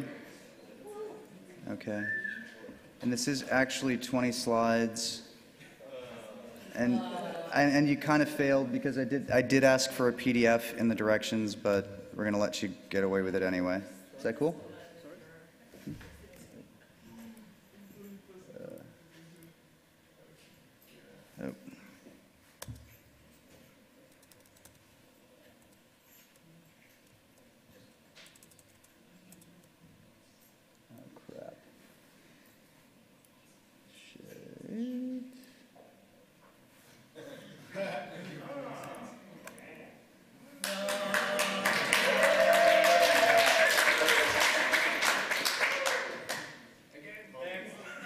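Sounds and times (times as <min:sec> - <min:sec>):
audience clapping and cheering: 0:40.6 - 0:46.6.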